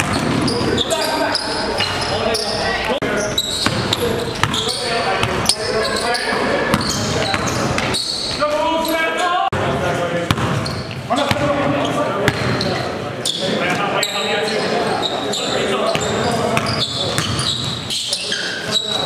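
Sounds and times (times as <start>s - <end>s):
players' voices in hall: 0.0s - 19.0s.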